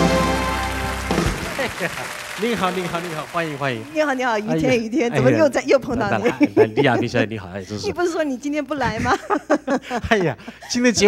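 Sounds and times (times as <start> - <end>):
band chord on organ and horns: 0.0 - 3.8
audience applause: 0.0 - 5.3
people laughing: 1.3 - 3.6, 4.6 - 8.0, 8.8 - 11.0.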